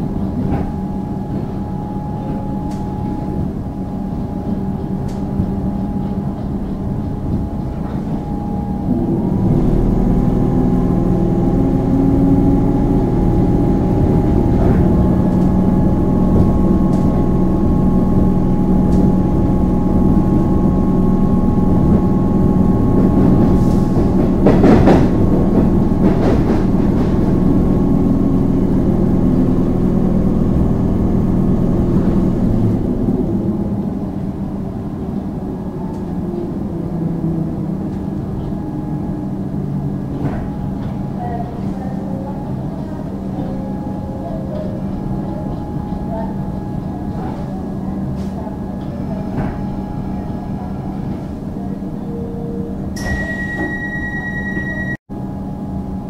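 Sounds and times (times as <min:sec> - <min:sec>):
train wheels rumbling on rails: 0:00.0 - 0:55.5.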